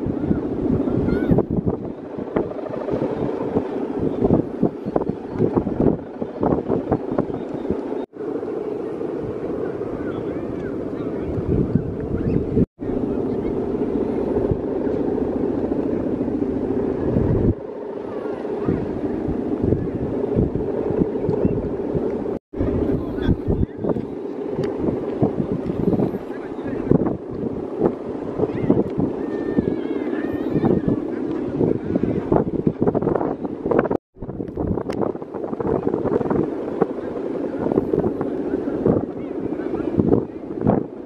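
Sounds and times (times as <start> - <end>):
kite hummer droning: 0.0 - 41.0
wind buffeting microphone: 0.0 - 41.0.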